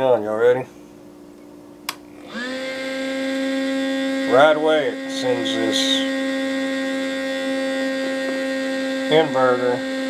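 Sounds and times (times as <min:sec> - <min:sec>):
electrical hum of heater fan: 0:00.0 - 0:09.8
heater switch click: 0:01.4 - 0:02.0.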